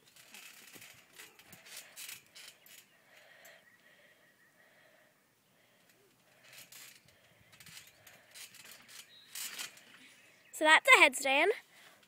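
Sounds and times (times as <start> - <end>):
trampoline creaks and rustles: 0.0 - 4.8, 5.4 - 12.0.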